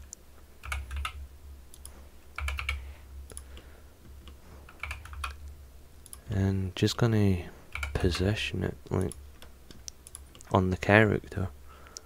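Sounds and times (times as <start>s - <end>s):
keyboard keys clicking: 0.0s - 5.4s, 7.7s - 8.2s
steady low hum: 0.0s - 12.0s.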